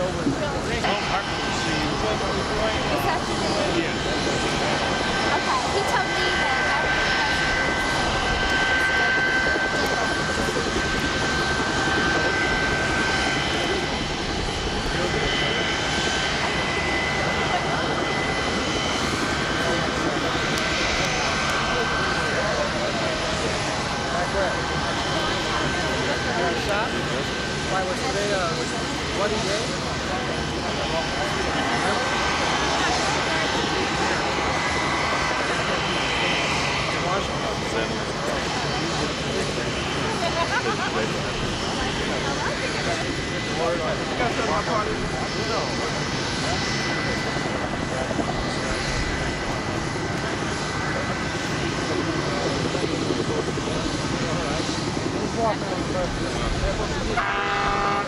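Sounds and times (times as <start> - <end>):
faint voices: 0.0 - 58.0
jet engines running: 0.0 - 58.0.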